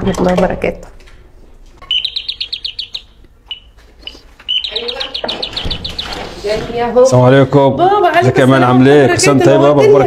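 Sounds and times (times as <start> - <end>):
electronic doorbell chirping: 1.8 - 6.4.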